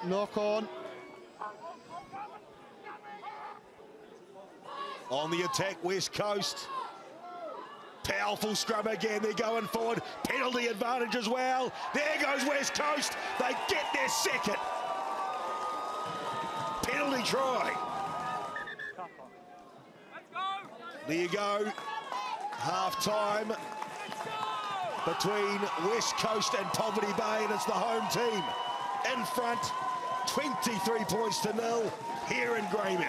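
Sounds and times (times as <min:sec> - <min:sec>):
crowd and ground ambience: 0:00.0 - 0:33.0.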